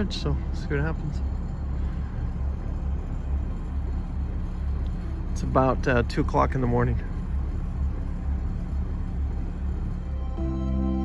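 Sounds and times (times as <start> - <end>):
ambient music with held tones: 0.0 - 11.0
boat engine idling: 0.0 - 11.0.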